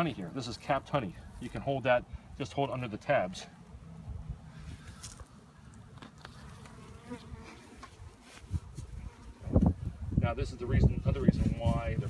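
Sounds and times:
honeybees buzzing: 3.5s - 10.2s.

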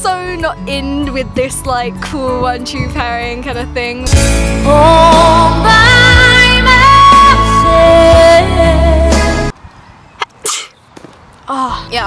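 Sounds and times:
woman talking: 11.5s - 12.0s.

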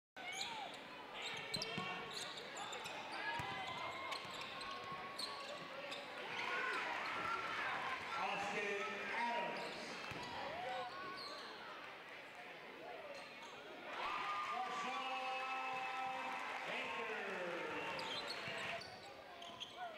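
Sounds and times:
voices of players and crowd: 0.2s - 19.9s.

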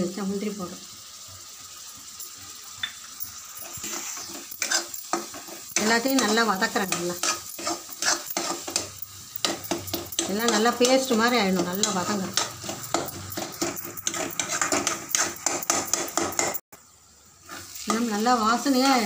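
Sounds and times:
masala sizzling: 0.0s - 19.0s
metal spatula scraping a pan: 3.2s - 16.6s, 17.4s - 19.0s.

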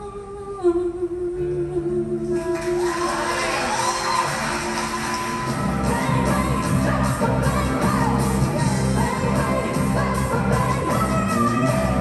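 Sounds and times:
band accompaniment: 2.8s - 12.0s.

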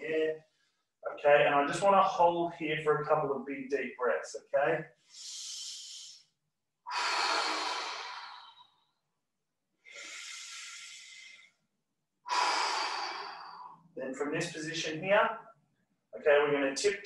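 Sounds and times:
man breathing deeply: 6.9s - 8.9s, 9.9s - 11.6s, 12.3s - 14.0s.

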